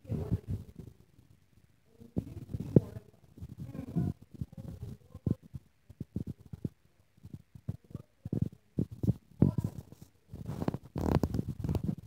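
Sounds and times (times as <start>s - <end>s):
phone microphone handling noise: 2.2s - 12.0s.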